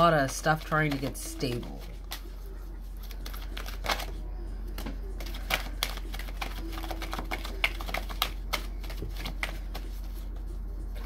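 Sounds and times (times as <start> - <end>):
cards being shuffled: 0.0 - 10.6
steady low hum: 0.0 - 11.0.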